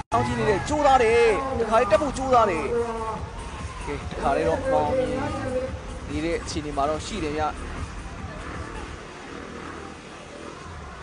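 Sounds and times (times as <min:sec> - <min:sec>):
onlookers' voices: 0:00.0 - 0:11.0
engine rumbling: 0:04.0 - 0:11.0.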